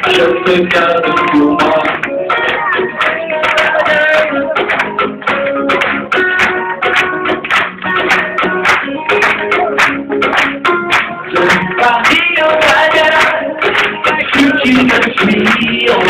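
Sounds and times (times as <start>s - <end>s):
live band playing instrumental: 0.0s - 16.0s
plucked acoustic guitar: 0.0s - 16.0s.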